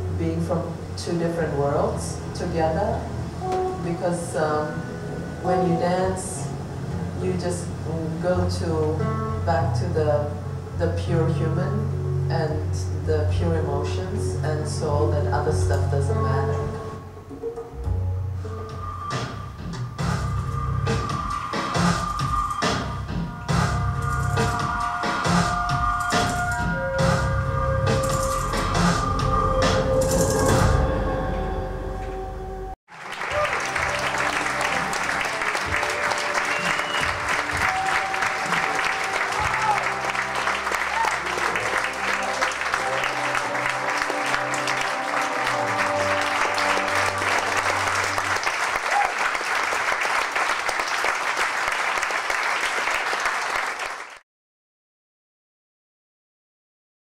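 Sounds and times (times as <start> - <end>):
music with heavy beat and drums: 18.8 - 30.8
audience applause: 32.9 - 54.2.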